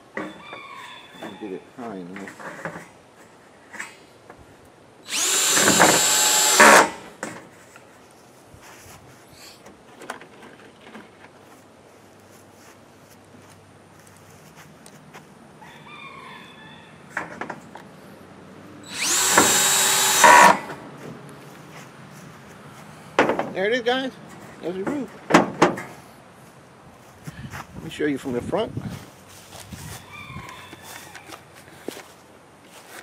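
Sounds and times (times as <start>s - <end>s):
cordless drill driving screws into metal: 5.1s - 7.2s, 18.9s - 20.8s.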